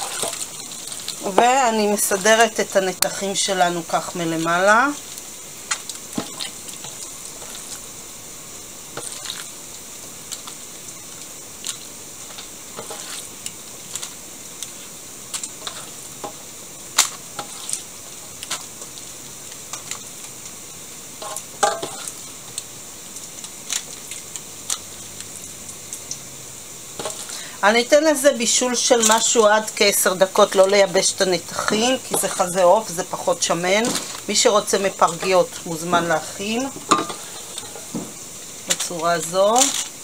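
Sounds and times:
paper and foil crinkling: 0:00.0 - 0:08.0, 0:09.0 - 0:09.6, 0:11.2 - 0:16.2, 0:16.9 - 0:20.4, 0:21.2 - 0:26.1, 0:28.6 - 0:40.0
steady high hiss: 0:00.0 - 0:40.0.

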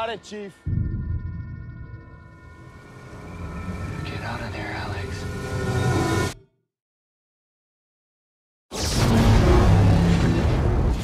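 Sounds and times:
sustained high tones: 0:00.0 - 0:06.4.

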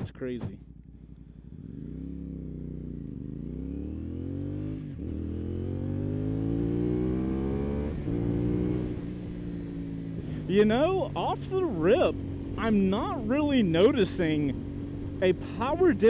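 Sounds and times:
motorcycle engine accelerating: 0:00.0 - 0:16.0.

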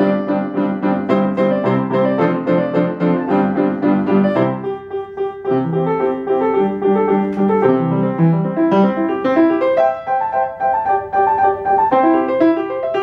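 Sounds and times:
grand piano playing lively tune: 0:00.0 - 0:13.0.

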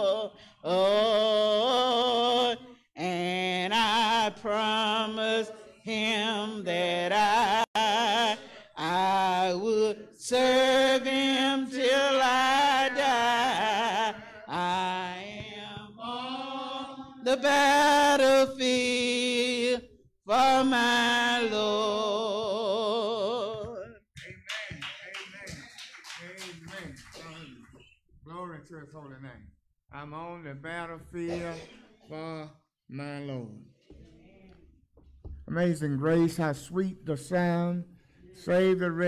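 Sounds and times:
person singing a hymn: 0:00.0 - 0:23.9.

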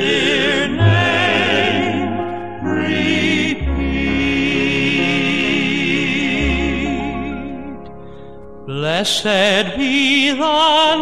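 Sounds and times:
male vocal group singing: 0:00.0 - 0:07.8.

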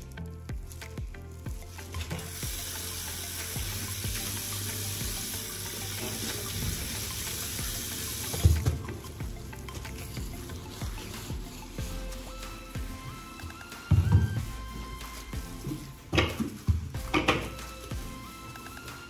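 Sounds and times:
sponge being rinsed: 0:00.6 - 0:19.0
tap water running into basin: 0:01.5 - 0:11.0.

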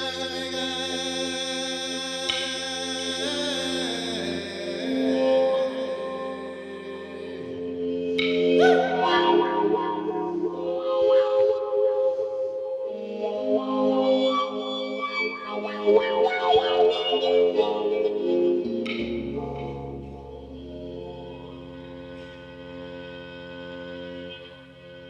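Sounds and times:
mouthbow droning: 0:00.0 - 0:25.0.

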